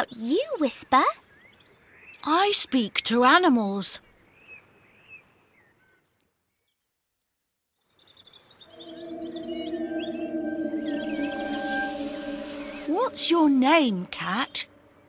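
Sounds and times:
faint birdsong: 0:00.0 - 0:15.0
synthesized magic shimmer: 0:08.7 - 0:15.0.

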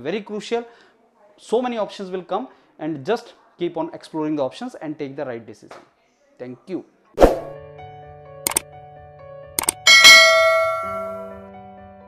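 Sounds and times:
faint background music: 0:00.0 - 0:08.6
short clicks: 0:09.6 - 0:09.8
bright bell-like ding: 0:09.6 - 0:11.4.

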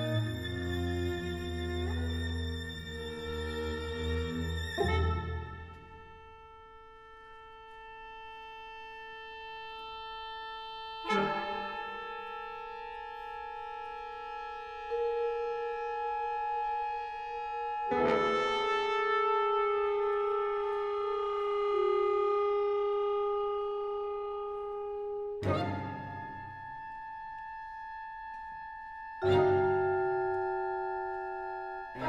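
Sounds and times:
chamber ensemble sustained wind notes: 0:00.0 - 0:32.0.

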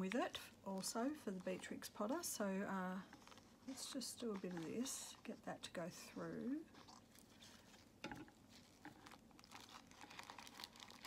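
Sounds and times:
paper coffee filter crinkling: 0:00.0 - 0:11.0
small crackles: 0:00.0 - 0:11.0.

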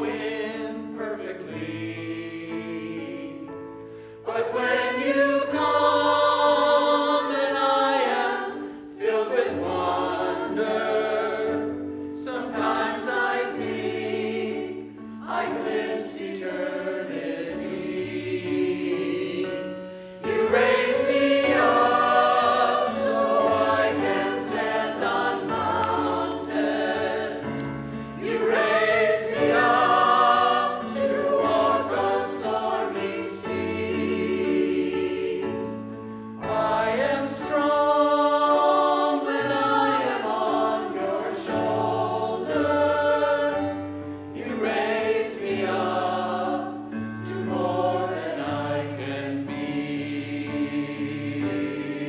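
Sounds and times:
mixed choir singing: 0:00.0 - 0:03.6, 0:04.2 - 0:52.0.

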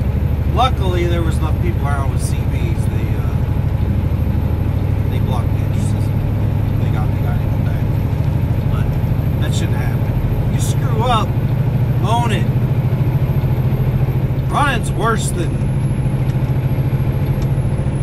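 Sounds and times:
truck diesel engine drone: 0:00.0 - 0:18.0.

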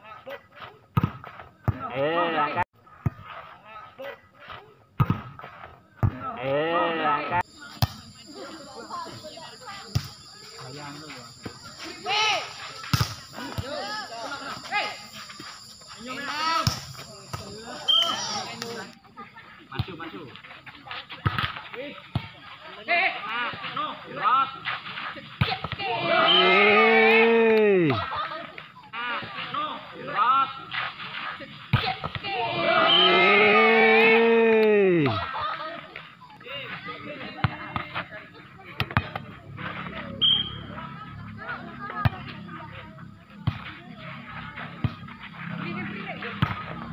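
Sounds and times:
spectators chattering: 0:07.2 - 0:46.9
young players shouting: 0:17.5 - 0:18.9, 0:25.8 - 0:28.1, 0:32.2 - 0:35.6
referee's whistle blast: 0:17.8 - 0:18.4, 0:26.1 - 0:26.7, 0:32.8 - 0:33.3, 0:40.2 - 0:40.7.

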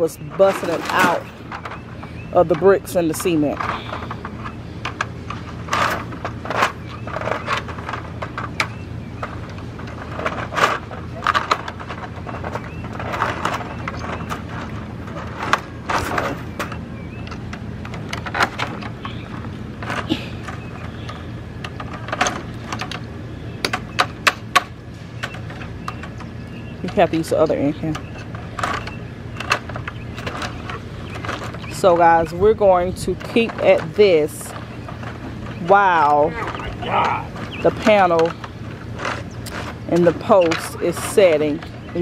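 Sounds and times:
metal tools knocking and scraping: 0:00.0 - 0:23.1, 0:23.7 - 0:42.0.

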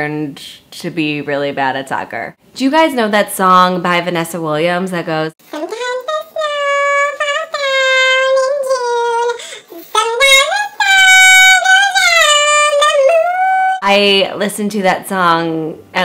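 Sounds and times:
woman singing unaccompanied: 0:05.4 - 0:14.2.

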